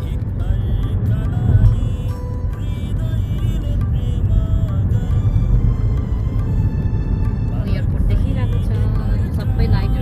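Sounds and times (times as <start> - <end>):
car cabin rumble: 0.0 - 10.0
music playing: 0.0 - 10.0.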